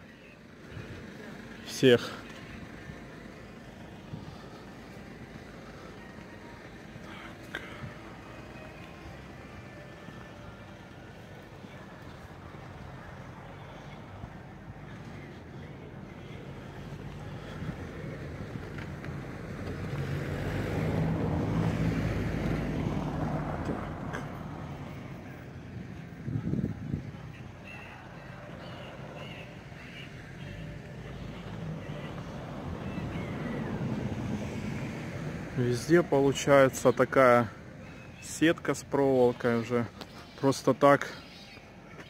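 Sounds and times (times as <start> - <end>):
faint traffic: 0.0 - 42.0
vehicle driving past: 12.0 - 37.8.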